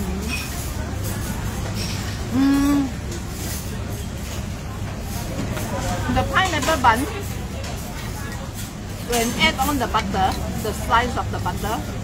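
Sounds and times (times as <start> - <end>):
faint chatter: 0.0 - 12.0.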